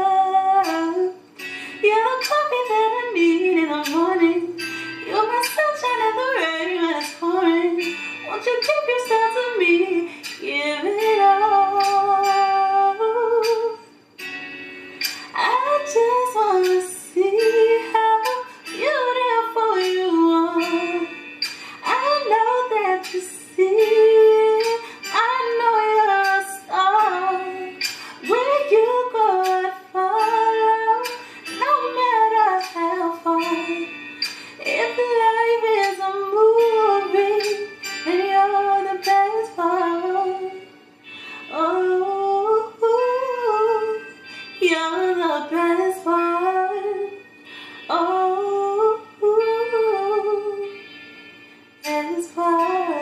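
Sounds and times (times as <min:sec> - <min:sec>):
woman singing: 0:00.0 - 0:13.8, 0:15.1 - 0:40.8, 0:41.4 - 0:50.8, 0:51.8 - 0:53.0.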